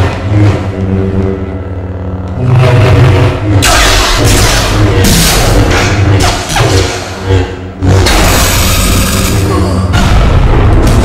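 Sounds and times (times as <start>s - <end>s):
lightsabers humming and clashing: 0.0s - 11.0s.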